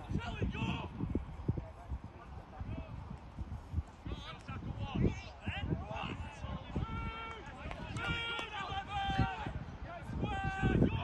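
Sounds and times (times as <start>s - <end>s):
players shouting: 4.1s - 11.0s.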